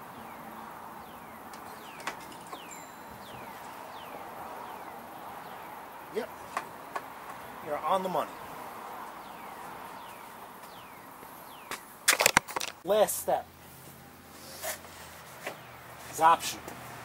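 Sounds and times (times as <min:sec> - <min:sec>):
handling clicks and knocks: 0:01.5 - 0:03.5, 0:12.1 - 0:12.8.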